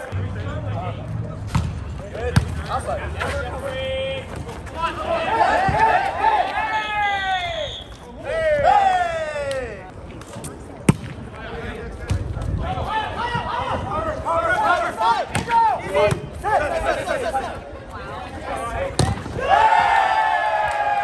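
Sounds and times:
players shouting: 2.1s - 9.8s, 12.6s - 21.0s.

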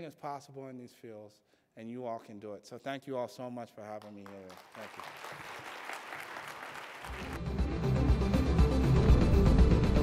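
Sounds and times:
audience applauding: 4.0s - 7.6s
outro music with heavy bass: 7.2s - 10.0s.

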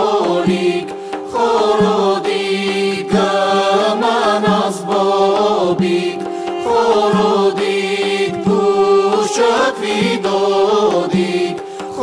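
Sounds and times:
ensemble singing folk song: 0.0s - 12.0s
steady held drone: 0.0s - 12.0s.

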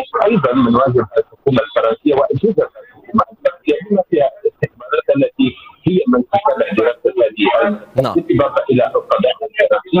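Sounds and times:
person talking over telephone: 8.0s - 8.5s.

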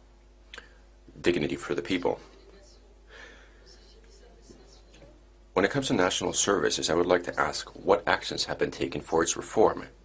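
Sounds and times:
low steady hum: 0.0s - 10.0s
faint background speech: 1.3s - 8.5s.

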